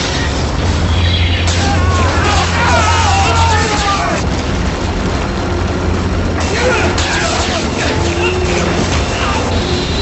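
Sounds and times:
burst of noise: 0.0 - 10.0
low spaceship rumble: 0.0 - 10.0.

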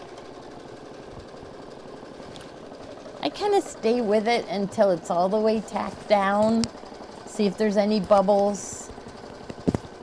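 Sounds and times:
embroidery machine stitching: 0.0 - 10.0.

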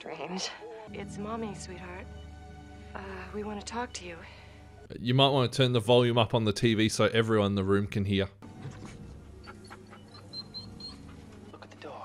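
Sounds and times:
dog whining: 8.6 - 11.6.

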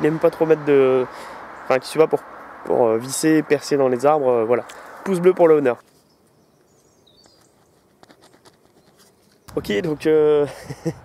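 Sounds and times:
high bird chirp: 6.0 - 7.8
ballpoint pen scratching on paper: 7.2 - 9.4.

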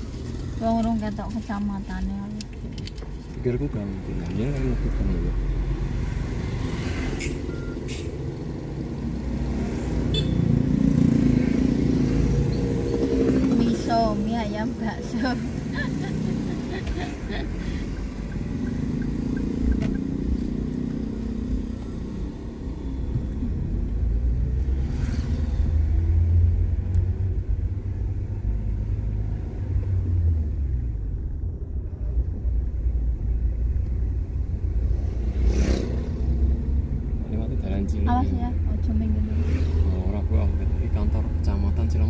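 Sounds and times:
car engine and tyres rumbling: 0.0 - 42.0.

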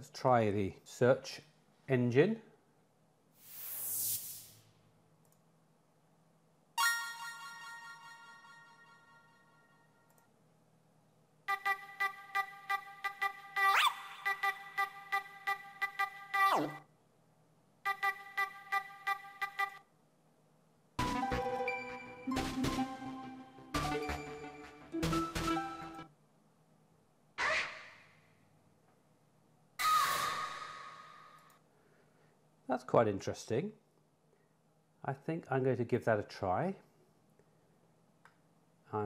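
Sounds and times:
electronic chime ringing: 6.8 - 10.0.

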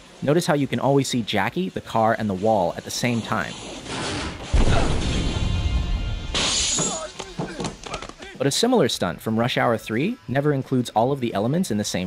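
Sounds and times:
windshield glass shattering: 3.7 - 8.0
low rumble of car crash: 4.2 - 6.8
film music: 4.6 - 7.4.

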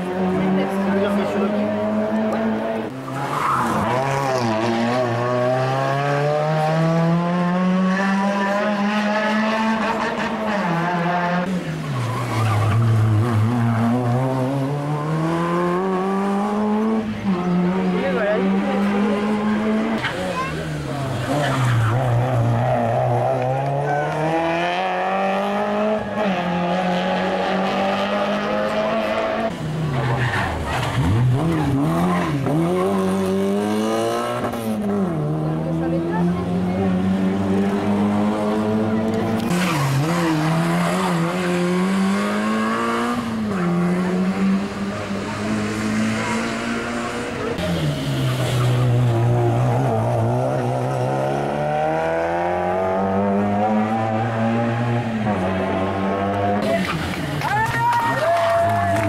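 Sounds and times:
rally car engine revving: 0.0 - 57.6.

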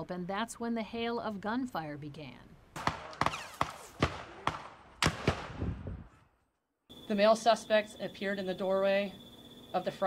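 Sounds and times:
echoing gunshots: 2.8 - 6.1.

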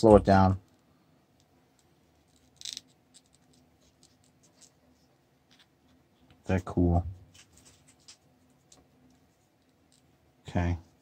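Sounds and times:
plastic crinkling and scraping: 7.2 - 8.8.

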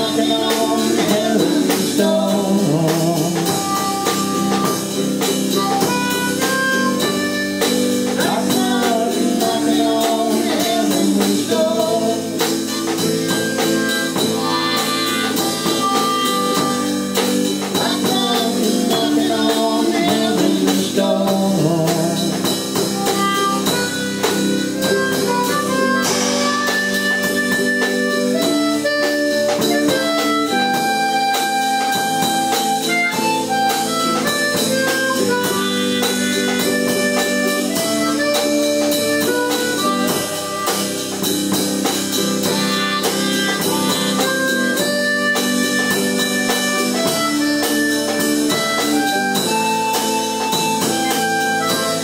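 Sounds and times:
drum kit steady beat: 0.0 - 52.0
electric guitar: 0.0 - 52.0
harmonica bending notes: 0.0 - 52.0.

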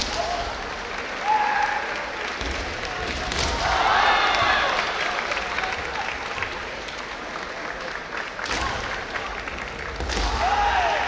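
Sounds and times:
spectators clapping: 0.0 - 11.0.

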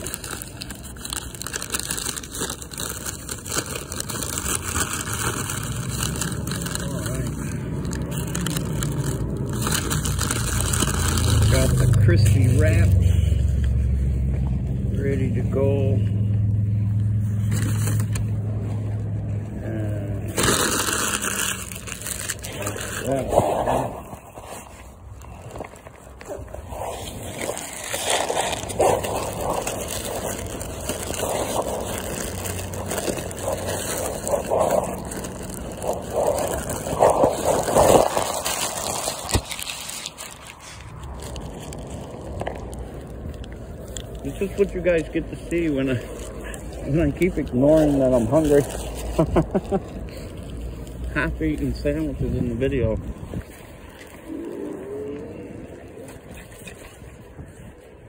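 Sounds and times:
paper wrapper crinkling: 0.0 - 58.0
vehicle engine running: 4.0 - 54.0.

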